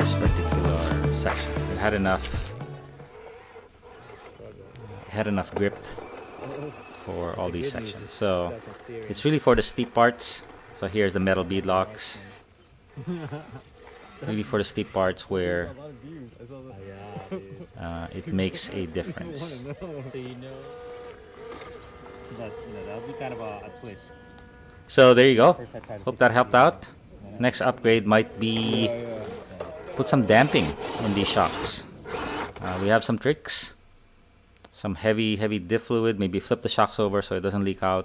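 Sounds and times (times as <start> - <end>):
small electric motor and gears whirring: 2.0 - 33.1.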